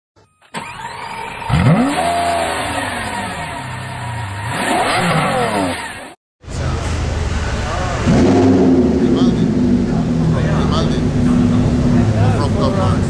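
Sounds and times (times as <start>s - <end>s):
car engine revving: 0.6s - 13.0s.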